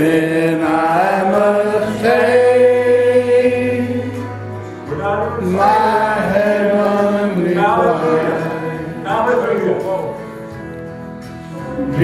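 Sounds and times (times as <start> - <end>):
man singing gospel: 0.0 - 10.2
instrumental accompaniment: 0.0 - 12.0.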